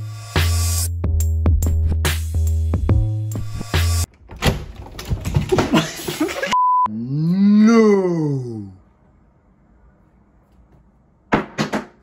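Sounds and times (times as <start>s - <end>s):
man's deep ooh call: 6.9s - 8.8s.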